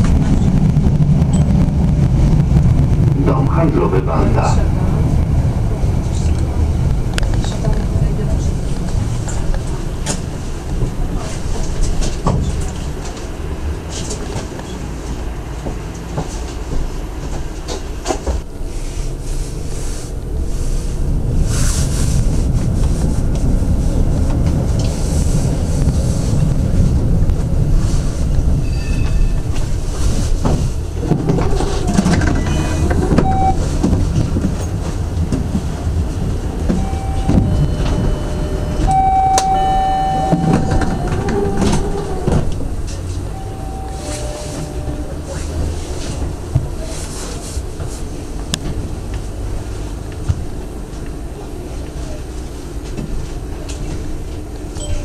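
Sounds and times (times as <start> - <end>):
tram wheels rumbling on rails: 0.0 - 55.0
short whining tones: 36.7 - 41.8, 43.3 - 45.2.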